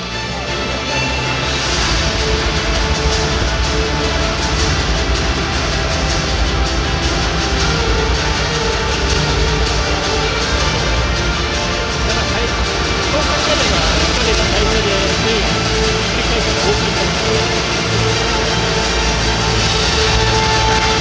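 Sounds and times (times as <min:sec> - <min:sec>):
crowd noise: 0:00.0 - 0:21.0
music over stadium loudspeakers: 0:00.0 - 0:21.0.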